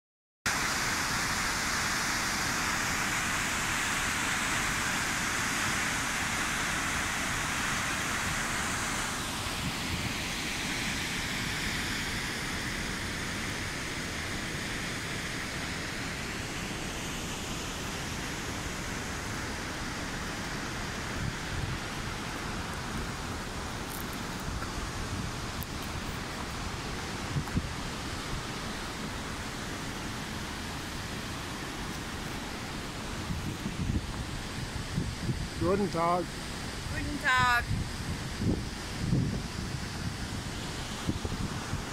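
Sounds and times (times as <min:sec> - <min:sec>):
waterfall rushing: 0:00.5 - 0:41.9.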